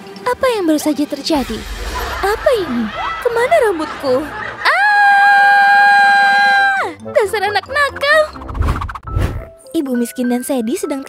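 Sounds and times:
woman screaming: 4.6 - 7.0.

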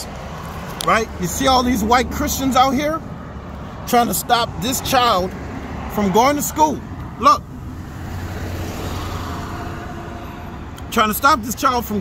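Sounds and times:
motor vehicle going by: 4.6 - 10.9.

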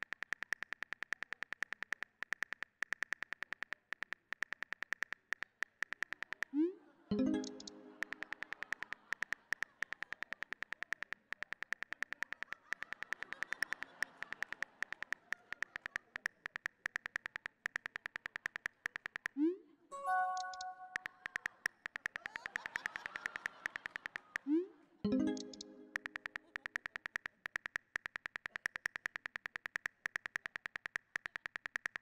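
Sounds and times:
smartphone keyboard clicks: 0.0 - 6.5, 7.3 - 19.4, 20.2 - 24.5, 25.2 - 32.0
short chime: 19.9 - 20.9.

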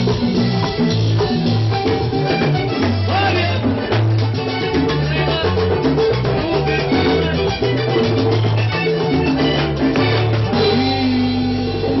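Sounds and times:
accordion: 0.0 - 12.0
live band playing: 0.0 - 12.0.

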